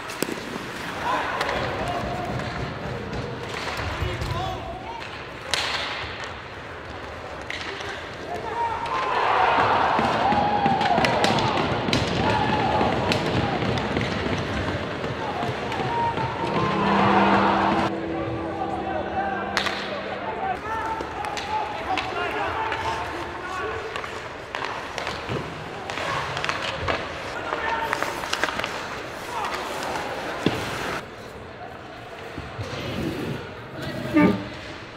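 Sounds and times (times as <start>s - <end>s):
hockey stick striking puck: 0.0s - 0.8s
skates and sticks on ice: 0.0s - 17.6s, 20.8s - 31.4s
arena crowd noise: 6.7s - 28.1s.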